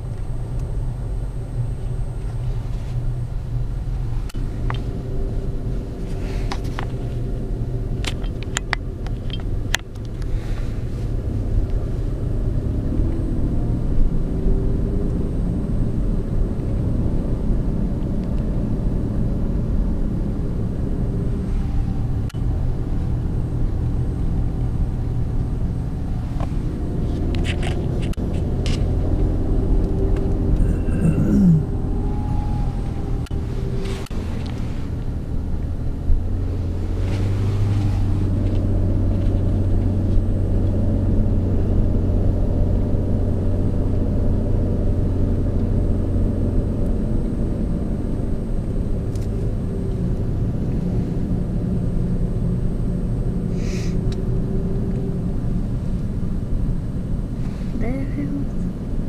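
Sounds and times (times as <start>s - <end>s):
car engine and tyres rumbling: 0.0s - 59.0s.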